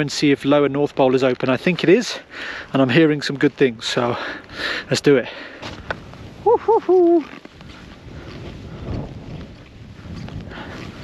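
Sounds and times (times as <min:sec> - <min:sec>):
skis sliding through powder snow: 0:01.8 - 0:11.0
skier whooping: 0:06.3 - 0:07.4.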